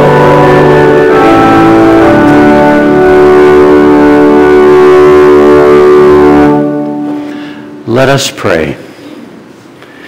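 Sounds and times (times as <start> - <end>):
organ sustained chord: 0.0 - 9.0.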